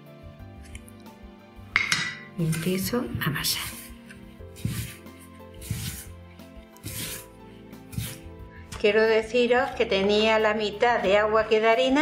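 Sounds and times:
soft background music: 0.0 - 12.0
spoon clinking metal bowl: 1.7 - 2.4.

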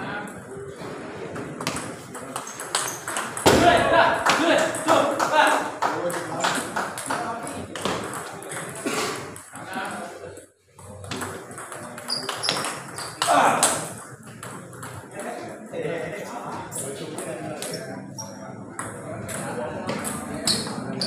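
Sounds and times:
table tennis ball pinging: 1.4 - 3.7, 10.9 - 15.4.

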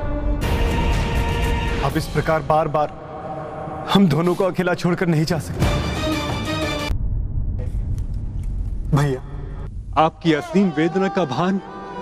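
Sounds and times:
low steady rumble: 6.9 - 10.5.

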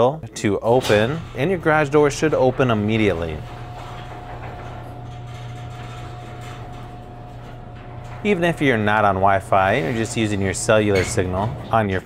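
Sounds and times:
garage door opener motor hum: 0.3 - 12.0.

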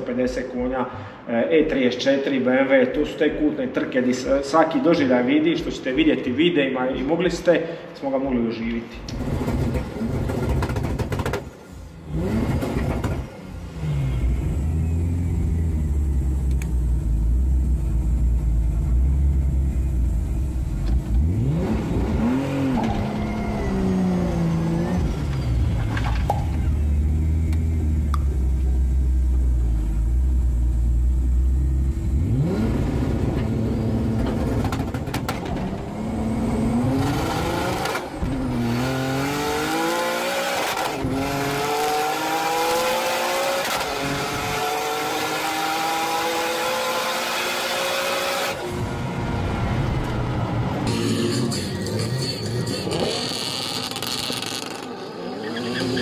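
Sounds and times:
car engine revving and accelerating: 11.9 - 50.9, 52.8 - 56.0.

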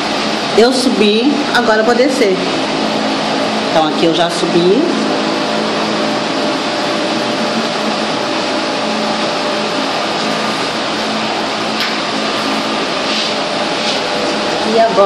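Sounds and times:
faint constant hum: 0.0 - 15.0
machine whirring: 0.0 - 15.0.

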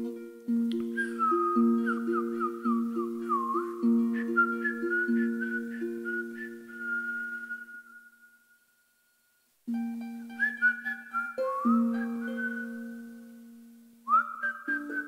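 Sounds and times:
high whistled melody: 0.0 - 15.0.

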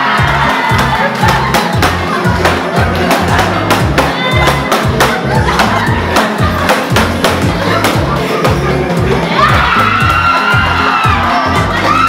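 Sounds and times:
crowd cheering and shouting: 0.0 - 12.0
music with bass beat: 0.0 - 12.0
sharp clap-like strikes: 0.2 - 8.0.

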